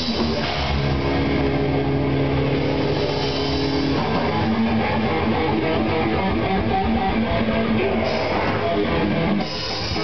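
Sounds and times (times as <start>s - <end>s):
distorted electric guitar and bass: 0.0s - 10.0s.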